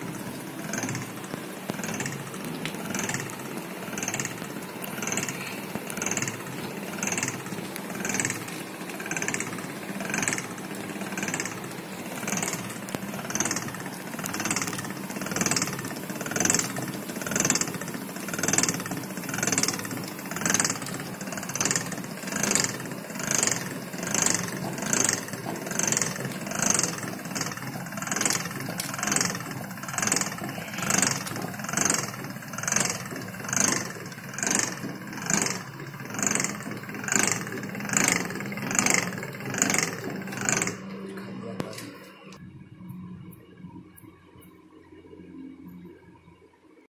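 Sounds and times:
roller crushing machine humming: 0.0s - 44.0s.

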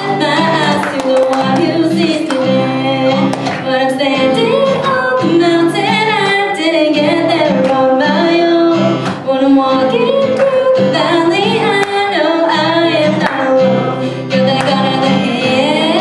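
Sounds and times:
strummed acoustic guitar: 0.0s - 16.0s
woman singing worship song: 0.0s - 16.0s.

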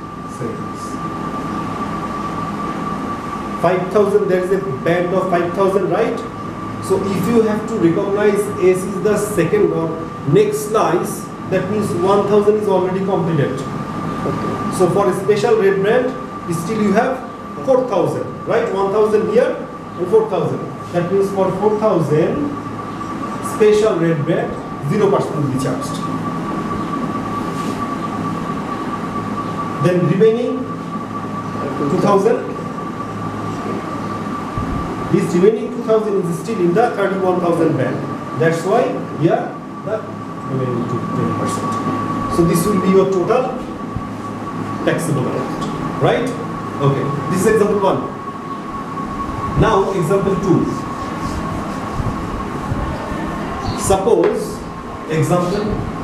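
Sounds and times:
room hum and low rumble: 0.0s - 56.0s
steady background drone: 0.0s - 56.0s
thin high whine: 0.0s - 56.0s
whiteboard being wiped: 27.4s - 27.8s.

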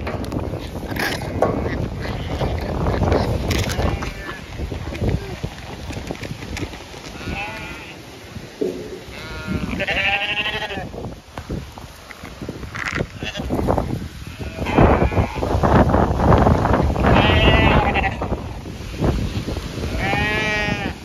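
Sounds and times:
wind buffeting microphone: 0.0s - 21.0s
sheep bleating: 3.6s - 4.4s, 7.2s - 8.0s, 8.8s - 10.9s, 14.2s - 15.4s, 17.0s - 18.2s, 19.9s - 21.0s.

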